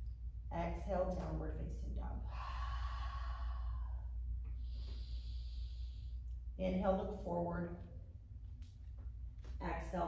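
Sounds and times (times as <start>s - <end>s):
woman exhaling: 2.2s - 6.2s.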